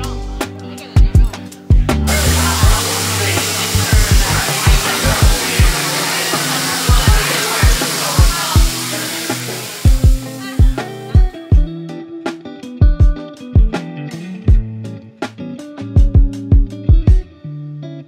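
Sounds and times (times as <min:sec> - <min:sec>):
background music with steady beat: 0:00.0 - 0:17.4
meat sizzling on a grill: 0:02.1 - 0:11.0.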